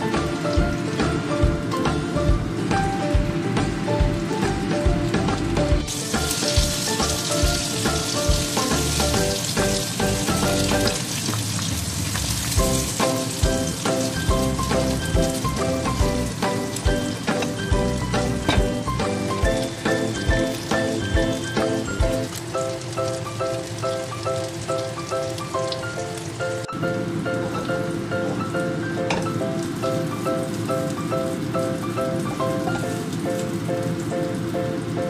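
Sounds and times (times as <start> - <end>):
background music with steady beat: 0.0 - 11.0, 12.6 - 22.6
hot oil sizzling in a wok: 0.0 - 35.0.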